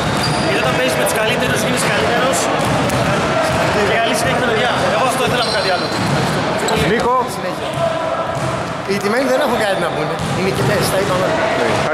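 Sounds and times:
basketballs bouncing on wooden court: 0.0s - 8.6s, 10.1s - 11.9s
people talking: 0.3s - 11.9s.

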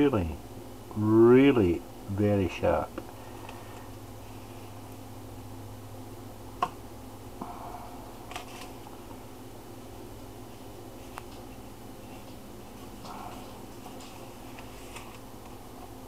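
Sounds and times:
steady low hum: 0.0s - 16.0s.

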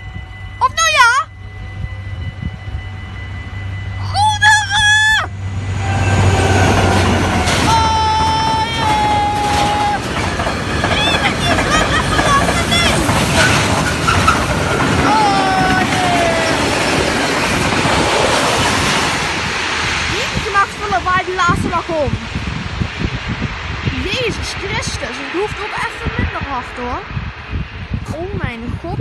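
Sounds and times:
train horn calls: 0.0s - 17.0s
train wheels rushing on rails: 0.0s - 29.0s.

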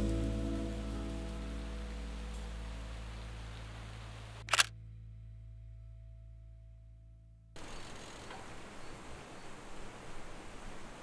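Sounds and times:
sustained music chord: 0.0s - 4.1s
camera shutter double click: 4.4s - 4.7s.

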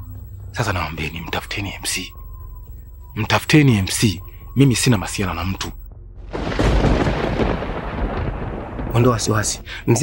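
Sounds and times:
low rumbling: 5.8s - 9.4s.

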